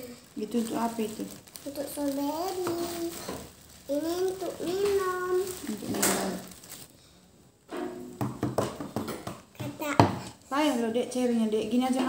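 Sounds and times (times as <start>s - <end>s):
foil medicine packet crinkling: 0.0s - 7.0s.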